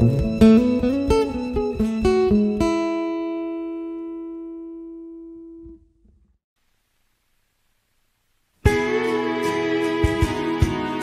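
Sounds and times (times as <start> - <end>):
guitar chord ringing: 0.0 - 6.0
soft rock song: 8.6 - 11.0.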